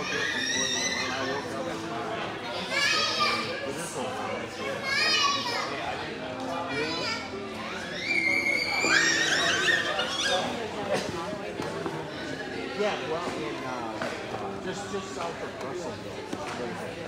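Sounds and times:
children calling out: 0.0 - 1.5, 2.5 - 3.7, 4.6 - 5.9, 6.7 - 10.7
crowd chatter: 0.0 - 17.0.

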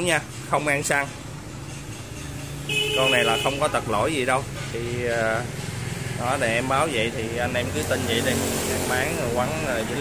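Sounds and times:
street traffic rumble: 0.0 - 10.0
high-pitched horn beep: 2.6 - 3.7.

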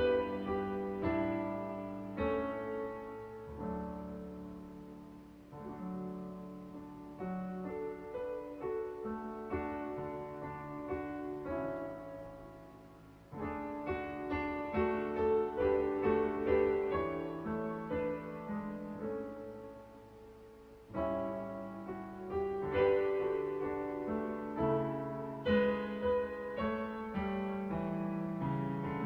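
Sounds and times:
hymn chords on digital piano: 0.0 - 29.0.

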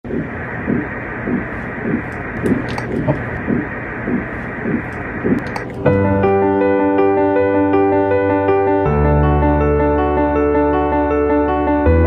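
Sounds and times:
doppler heartbeat whooshing pulses: 0.0 - 6.2
steady hiss: 0.0 - 6.5
electric piano music: 5.4 - 12.0.

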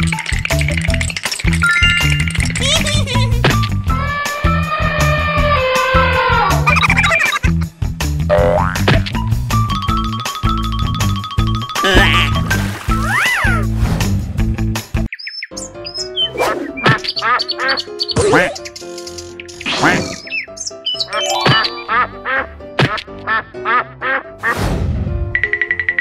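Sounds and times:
light background music: 0.0 - 26.0.

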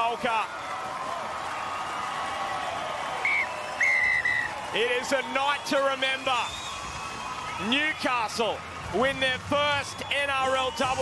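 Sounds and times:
crowd cheering and applauding: 0.0 - 11.0
referee's whistle: 3.2 - 4.6, 6.1 - 7.0, 9.8 - 11.0.

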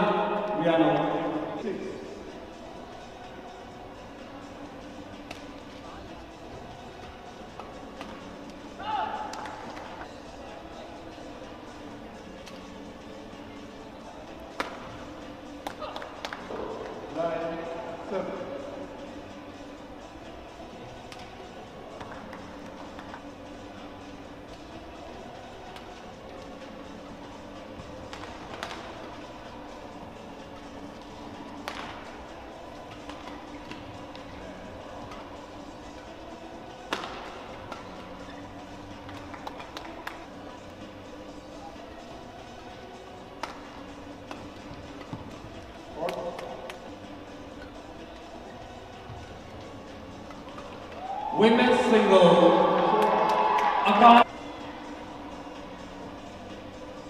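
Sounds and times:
murmur of voices: 0.0 - 57.0
racket striking shuttlecock: 36.9 - 37.8.

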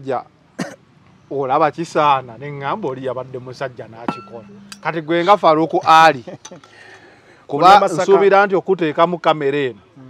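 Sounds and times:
light clink: 4.0 - 4.9.

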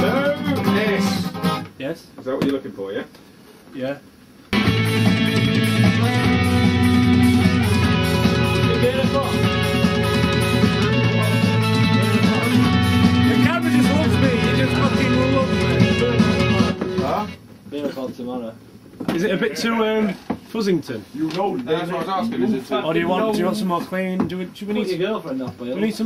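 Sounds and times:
rock music with distorted guitar: 0.0 - 1.7, 4.6 - 17.4.

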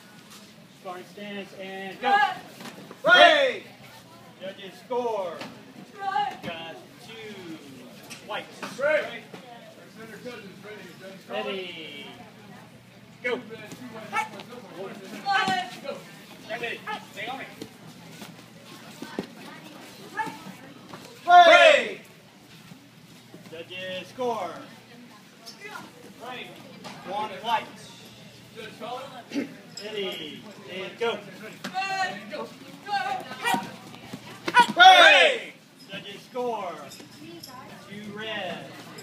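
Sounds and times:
voices echoing in a gym: 0.0 - 39.0
high-pitched short shouts: 34.5 - 35.5.

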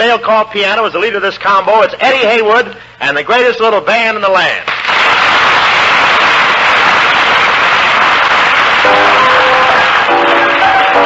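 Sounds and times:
audience applauding: 4.7 - 11.0
jazz piano playing: 8.8 - 11.0.

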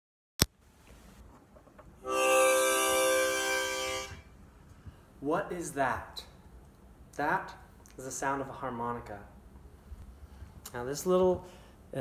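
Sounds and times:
harmonica chord: 2.0 - 4.3.

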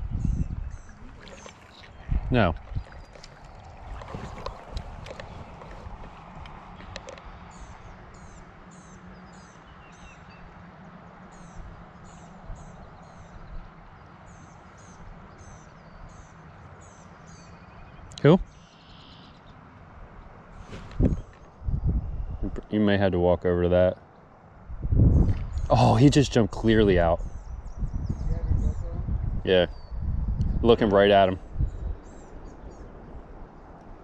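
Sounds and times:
low outdoor background noise: 0.0 - 34.0
bird singing high notes: 16.9 - 19.5.

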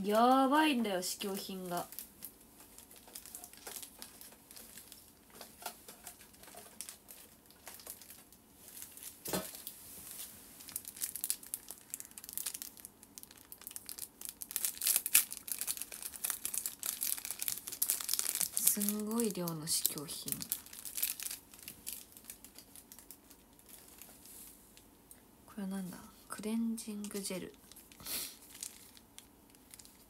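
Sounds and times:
plastic sachets crinkling: 0.1 - 24.9, 26.9 - 30.0.

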